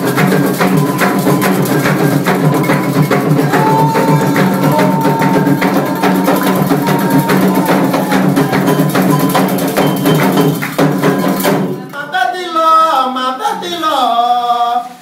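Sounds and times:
hand drums beating fast rhythm: 0.0s - 11.9s
voices singing: 0.1s - 15.0s
struck bell: 8.6s - 10.6s.

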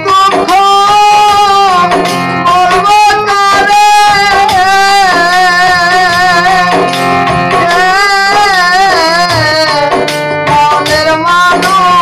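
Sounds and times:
drum and instrumental accompaniment: 0.0s - 12.0s
person singing folk song: 0.0s - 12.0s.

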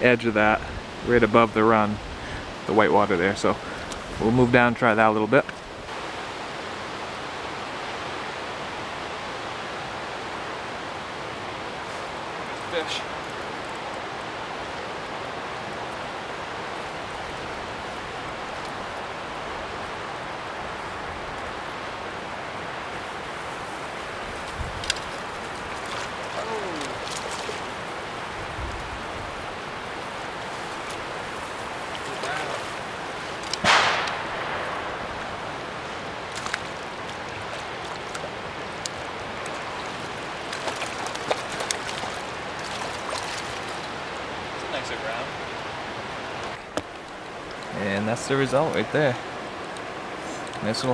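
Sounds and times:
river water rushing over riffle: 0.0s - 50.9s
short loud burst: 33.6s - 35.0s.

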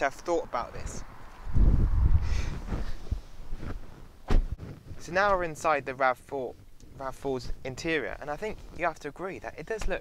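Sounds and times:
wind buffeting microphone: 0.6s - 4.9s
rustling: 2.3s - 5.7s.

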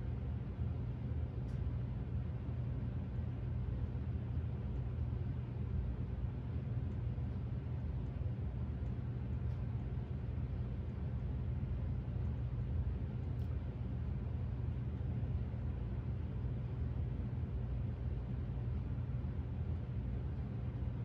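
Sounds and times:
faint light ticks: 1.4s - 1.7s, 6.7s - 11.3s, 12.1s - 13.7s.

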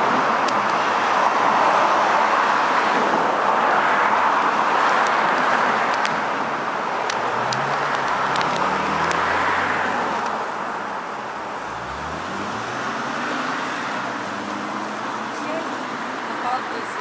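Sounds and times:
road traffic noise: 0.0s - 17.0s
vehicle engine climbing in pitch: 11.4s - 15.3s.

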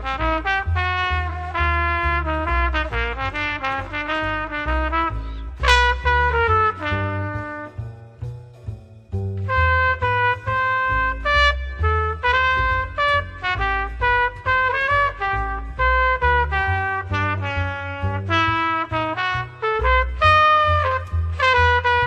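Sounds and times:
plucked double bass: 0.0s - 22.0s
trumpet playing jazz melody: 0.0s - 22.0s.

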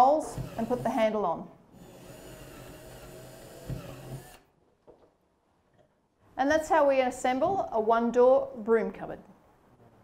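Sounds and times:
cordless drill drilling: 0.4s - 1.0s, 1.8s - 4.5s.

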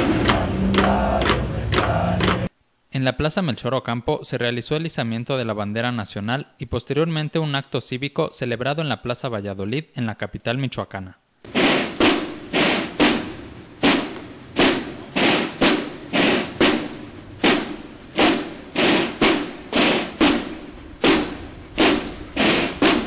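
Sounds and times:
drum beating march rhythm: 0.0s - 2.5s, 11.4s - 23.0s.

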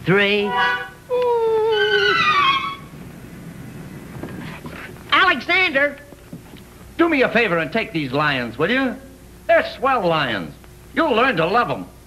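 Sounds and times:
soundtrack hiss: 0.0s - 12.0s
man humming: 1.1s - 2.2s
descending whistle tone: 1.6s - 2.9s.

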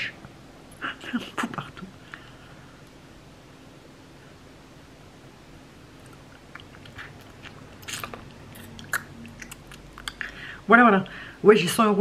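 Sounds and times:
lip and tongue clicks: 6.0s - 10.4s.

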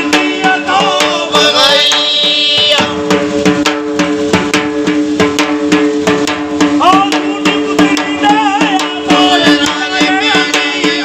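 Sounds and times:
person singing: 0.0s - 3.0s, 6.8s - 11.0s
hand drum beating fast: 0.0s - 11.0s.

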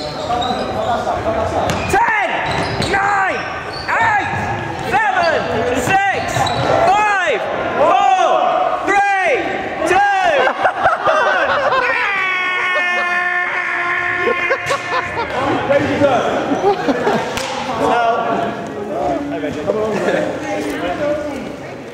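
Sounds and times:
players' voices: 0.0s - 21.9s
shoes squeaking on wooden floor: 1.7s - 6.9s.

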